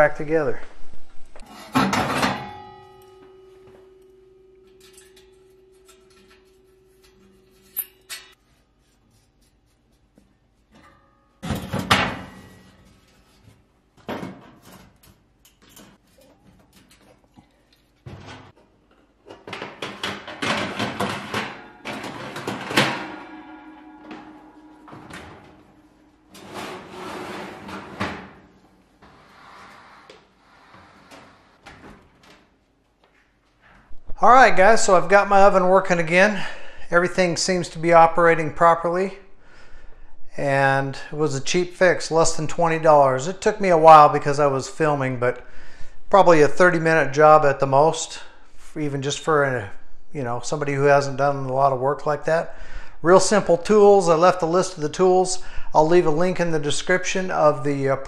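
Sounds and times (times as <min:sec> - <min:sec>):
sheet metal clanking: 0:01.4 - 0:08.9, 0:10.7 - 0:13.4, 0:19.3 - 0:32.2
metal scraping: 0:01.4 - 0:13.8, 0:19.8 - 0:31.6
metal ringing tone: 0:01.5 - 0:09.0, 0:21.3 - 0:27.5.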